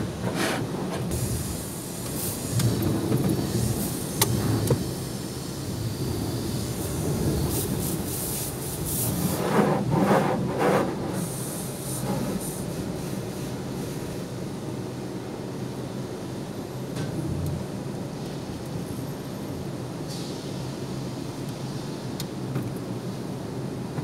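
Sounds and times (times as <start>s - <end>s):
car wash mechanical rumble: 0.0s - 24.0s.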